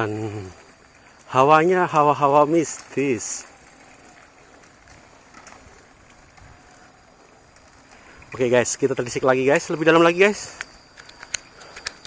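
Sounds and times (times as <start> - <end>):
bike tyres rolling on leaves: 0.0 - 12.0.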